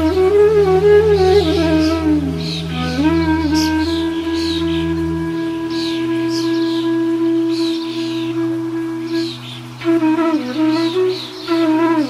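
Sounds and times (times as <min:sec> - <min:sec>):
flute holding long note: 0:00.0 - 0:12.0
low sustained drone: 0:00.0 - 0:12.0.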